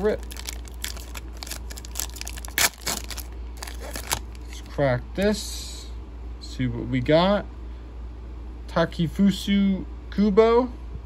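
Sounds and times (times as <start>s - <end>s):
foil wrapper crinkling and tearing: 0.0s - 4.7s.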